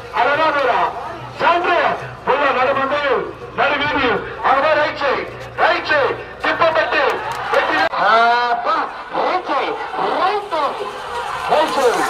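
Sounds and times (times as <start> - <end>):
man shouting over loudspeaker: 0.1 - 12.0.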